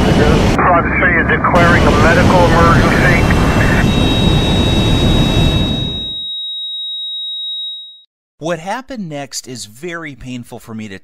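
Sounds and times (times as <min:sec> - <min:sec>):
jet engine rush: 0:00.0 - 0:05.8
high-pitched electronic tone: 0:03.0 - 0:08.0.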